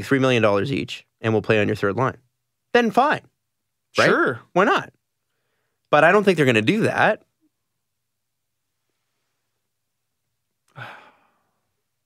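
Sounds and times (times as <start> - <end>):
man sighing: 10.7 - 11.6.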